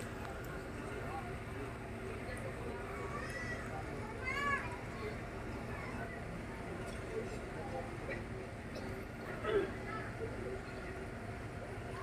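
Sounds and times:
indistinct distant voices: 0:00.0 - 0:12.0.

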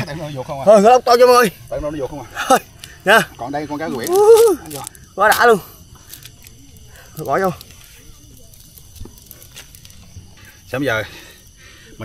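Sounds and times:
night insects chirring: 0:00.0 - 0:12.0.

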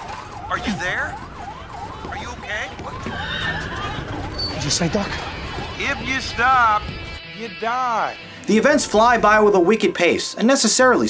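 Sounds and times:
electronic siren yelping: 0:00.0 - 0:08.1.

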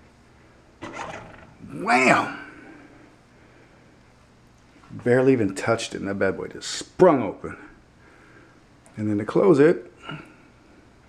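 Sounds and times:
trash can lid springing open: 0:00.8 - 0:01.7
man exclaiming: 0:01.6 - 0:02.5.

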